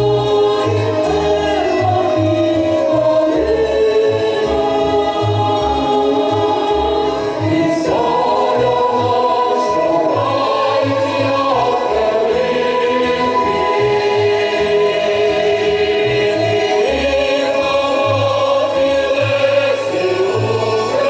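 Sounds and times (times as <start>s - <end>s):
mixed choir singing folk song: 0.0s - 21.0s.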